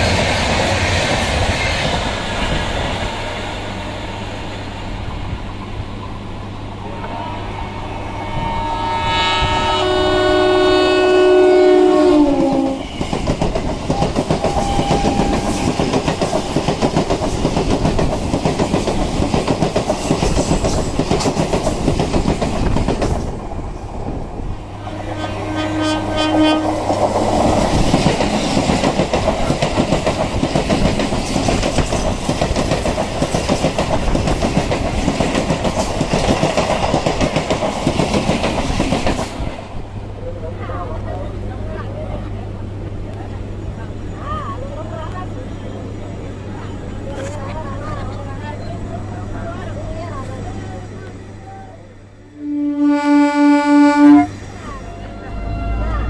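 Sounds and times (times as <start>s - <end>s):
train rumbling on rails: 0.0s - 56.0s
train horn: 6.8s - 12.9s, 13.9s - 15.8s, 24.8s - 26.9s, 52.3s - 56.0s.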